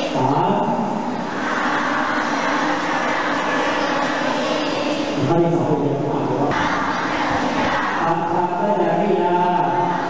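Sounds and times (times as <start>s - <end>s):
boys chanting together: 0.0s - 5.5s, 6.3s - 10.0s.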